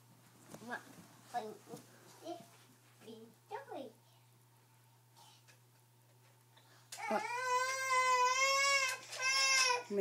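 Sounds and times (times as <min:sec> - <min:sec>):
baby crying: 0:07.0 - 0:10.0.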